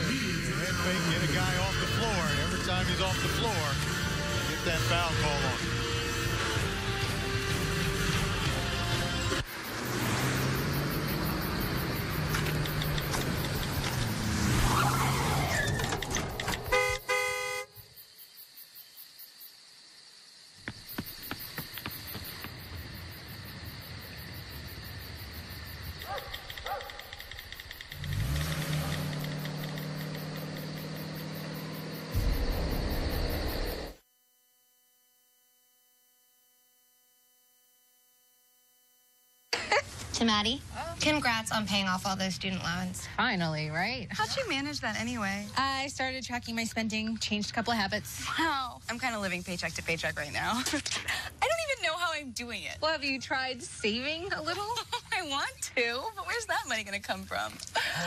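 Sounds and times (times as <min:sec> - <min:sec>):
vehicle engine running: 0:00.0 - 0:15.5, 0:27.2 - 0:33.9
car horn blast: 0:01.3 - 0:03.2, 0:16.6 - 0:17.8.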